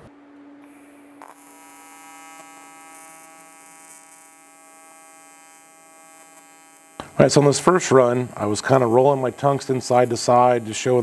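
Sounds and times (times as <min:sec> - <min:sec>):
welding arc buzzing: 0:00.6 - 0:11.0.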